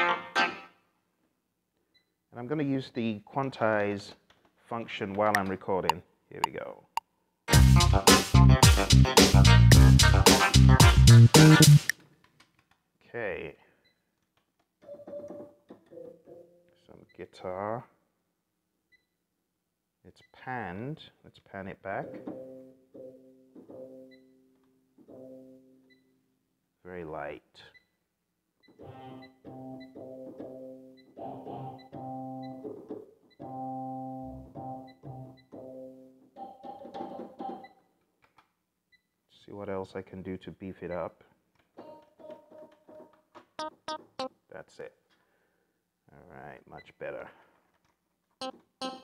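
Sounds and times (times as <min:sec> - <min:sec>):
keyboard playing guitar sound: 0:00.0 - 0:00.7, 0:07.5 - 0:11.9, 0:29.1 - 0:32.6, 0:33.4 - 0:36.2, 0:43.6 - 0:44.3, 0:48.4 - 0:49.0
keyboard plucked guitar notes: 0:31.6 - 0:32.6, 0:33.4 - 0:36.0, 0:43.6 - 0:44.3, 0:48.4 - 0:49.0.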